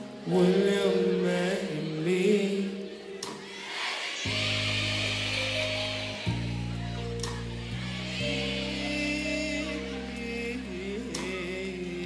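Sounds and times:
band holding low chord: 4.3s - 12.0s.

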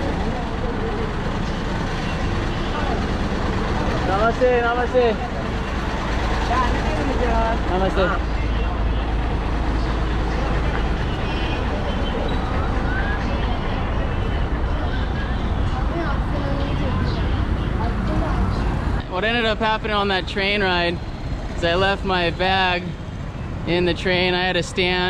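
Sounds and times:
street noise: 0.0s - 25.0s
vehicle engine rumble: 0.0s - 25.0s.

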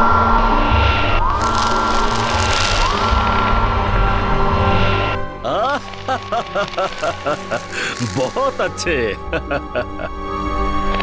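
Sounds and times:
low rumble: 0.0s - 9.7s
crackling hissing energy noise: 0.0s - 11.0s.

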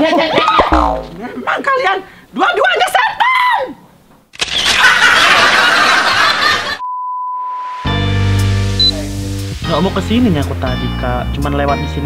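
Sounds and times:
high single-pitch test tone: 6.8s - 8.1s, 8.7s - 9.1s
tv static hiss: 7.6s - 10.6s.

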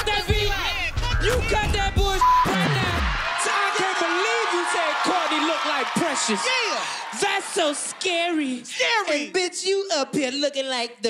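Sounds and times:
hip-hop beat slowing down: 0.0s - 3.2s
audience whooping and shouting: 1.0s - 8.8s
short beep: 2.2s - 2.7s.

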